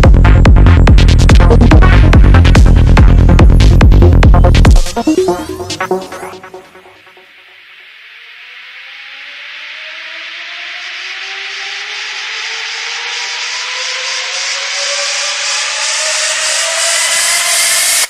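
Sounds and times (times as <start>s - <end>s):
synth tones gliding upward: 1.5s - 18.0s
white-noise riser: 5.7s - 18.0s.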